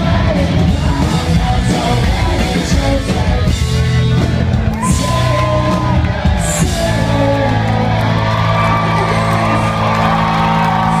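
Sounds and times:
electric guitars and bass chord: 0.0 - 11.0.

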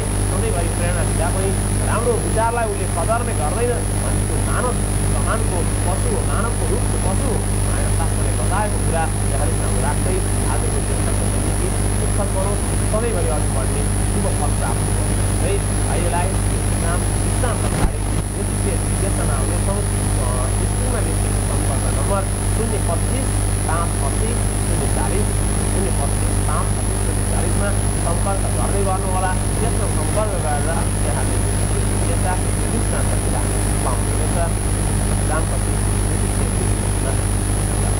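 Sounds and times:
high-pitched whine: 0.0 - 37.9
loud low hum: 0.0 - 37.9
man talking faintly: 0.0 - 37.9.

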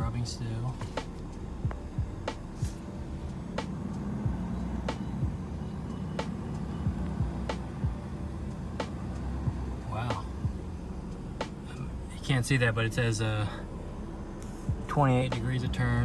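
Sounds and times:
diesel engine idling: 0.0 - 16.0.

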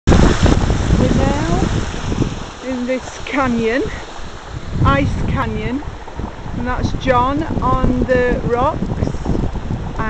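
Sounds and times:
wind buffeting microphone: 0.0 - 10.0
stream splashing between rocks: 0.1 - 7.6.

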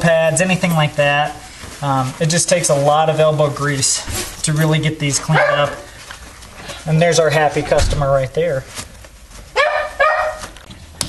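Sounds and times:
dog barking: 5.4 - 5.8, 9.6 - 10.5.

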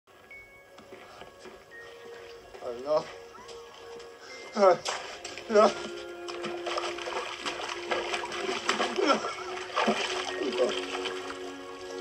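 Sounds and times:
shallow water splashing: 4.9 - 12.0.

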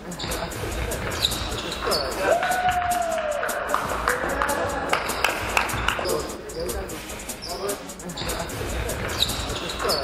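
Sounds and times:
voices in a gym: 0.0 - 10.0
high squeak: 1.1 - 2.3, 9.0 - 10.0.

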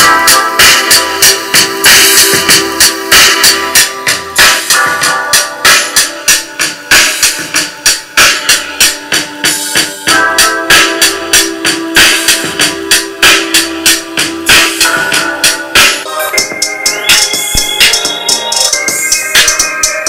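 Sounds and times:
held keyboard notes: 0.0 - 20.0
trap music through a speaker: 0.0 - 20.0.

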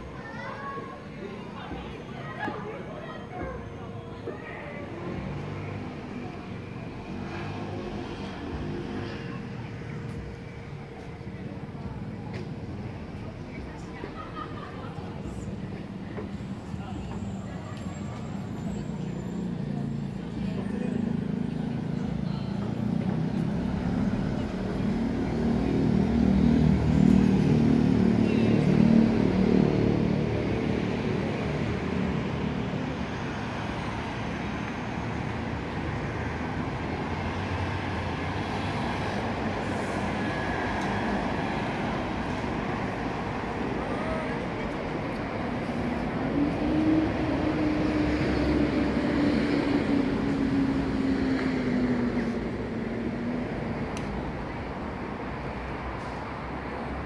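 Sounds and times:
road traffic noise: 0.0 - 57.0.

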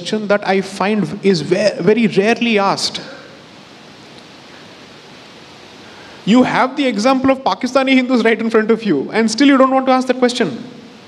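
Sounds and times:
low hiss: 0.0 - 11.0.

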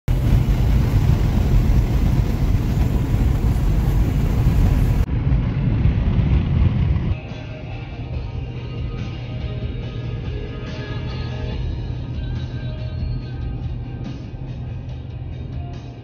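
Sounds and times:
car cabin road and wind noise: 0.0 - 7.2
music: 7.2 - 16.0.

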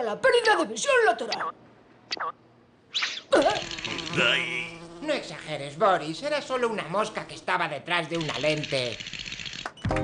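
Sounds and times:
cartoon housefly buzzing: 3.0 - 5.8.

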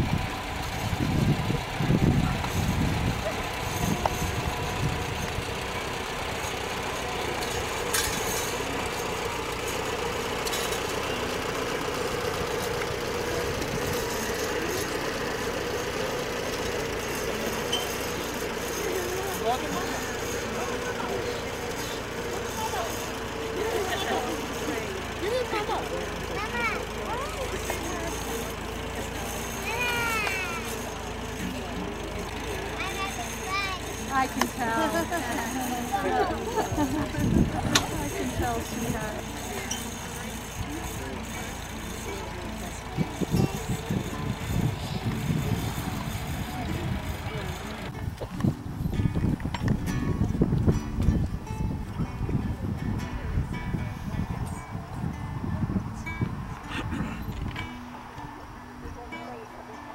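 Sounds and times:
people's voices: 0.0 - 59.9
tractor engine running: 0.0 - 59.9.

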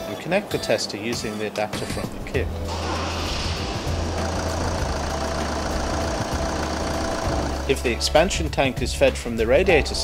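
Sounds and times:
car engine idling: 2.4 - 8.5.

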